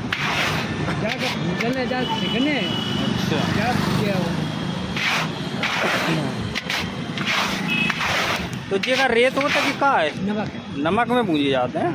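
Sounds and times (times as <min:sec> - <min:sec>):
scraping in an iron pan: 0:00.0 - 0:01.7, 0:05.0 - 0:10.0.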